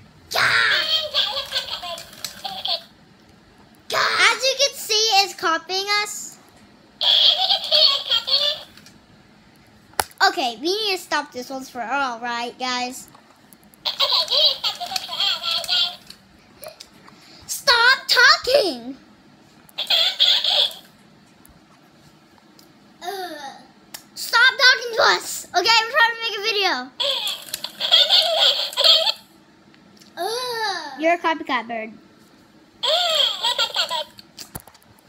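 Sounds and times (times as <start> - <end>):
toy playing back squeaky child voice: 0.4 - 2.9, 7.0 - 8.7, 13.9 - 16.0, 19.8 - 20.9, 27.0 - 29.3, 32.8 - 34.2
children giggling: 13.9 - 15.7, 27.0 - 29.2.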